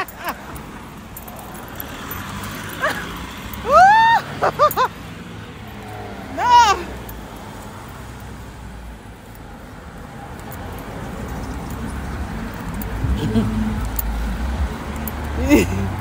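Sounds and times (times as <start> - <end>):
low rumble of road traffic: 0.0 - 16.0.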